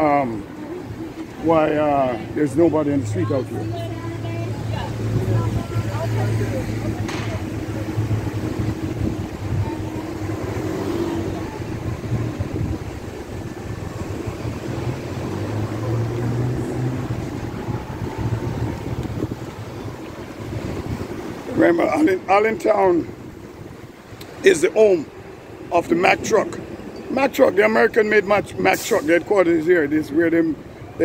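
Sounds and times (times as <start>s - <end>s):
traffic engine hum: 0.0s - 31.0s
wind on microphone: 3.4s - 27.1s.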